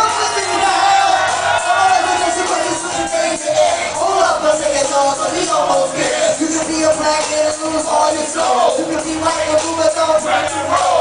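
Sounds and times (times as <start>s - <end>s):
backing track over loudspeakers: 0.0s - 11.0s
man rapping into a microphone: 0.0s - 11.0s.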